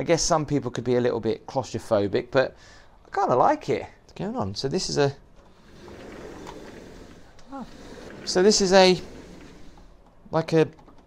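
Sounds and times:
window frame rubbing open: 0:05.5 - 0:10.0.

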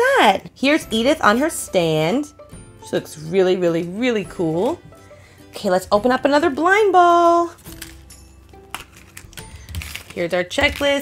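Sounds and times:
quiet background music: 0:00.0 - 0:11.0
plastic capsule clicking and creaking: 0:07.6 - 0:11.0.

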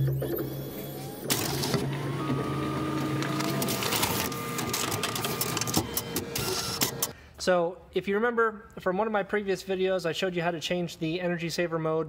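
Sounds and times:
copier motor hum: 0:00.9 - 0:07.1
paper-feed clicks and rattles: 0:01.3 - 0:07.1.

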